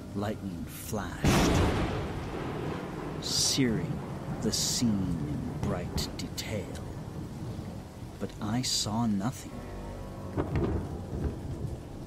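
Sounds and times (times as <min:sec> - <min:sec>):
steady rain: 0:00.0 - 0:12.0
low roll of thunder: 0:01.2 - 0:12.0.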